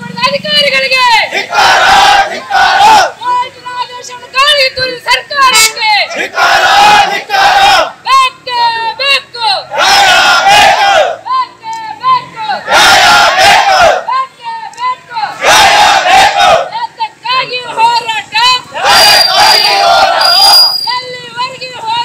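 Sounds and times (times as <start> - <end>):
crowd chanting slogans: 1.1 - 3.4, 5.8 - 8.1, 9.6 - 11.3, 12.2 - 14.4, 15.0 - 16.8, 17.6 - 20.7.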